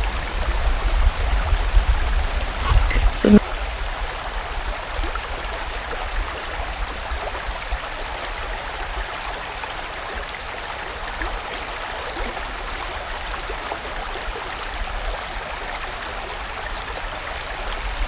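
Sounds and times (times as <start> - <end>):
stream flowing over rocks: 0.0 - 18.0.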